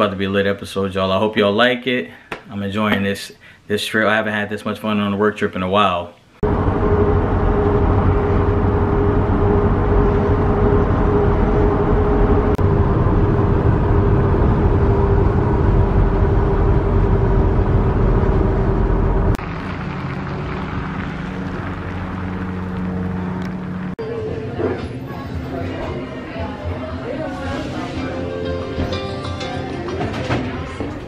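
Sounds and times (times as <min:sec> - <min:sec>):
outdoor background noise: 0:06.2 - 0:31.0
van road and engine rumble: 0:06.4 - 0:24.0.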